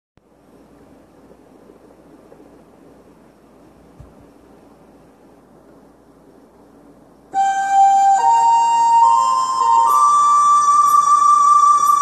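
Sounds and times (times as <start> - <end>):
background hiss and rumble: 0.2 - 12.0
low thump: 4.0 - 4.3.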